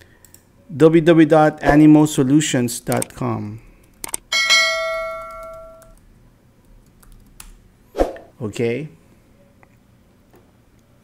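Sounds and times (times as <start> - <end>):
quick clicks: 2.9 - 3.2, 3.9 - 4.2
bell chime: 4.3 - 5.8.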